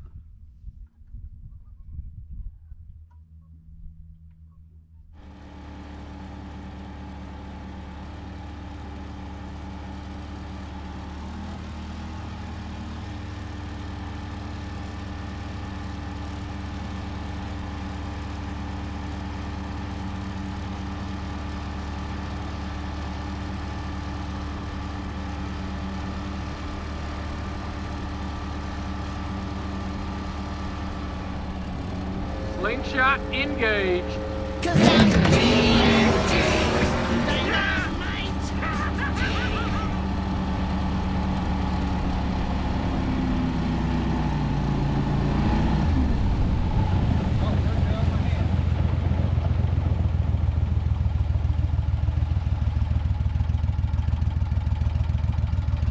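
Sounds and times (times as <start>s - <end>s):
boat motor running: 13.9s - 55.8s.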